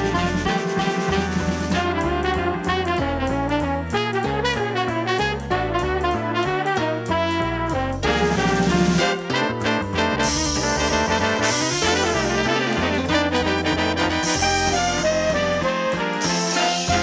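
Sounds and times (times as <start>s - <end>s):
big band horns: 0.0s - 17.0s
drum kit with cymbals: 0.0s - 17.0s
synthesizer bass line: 7.7s - 17.0s.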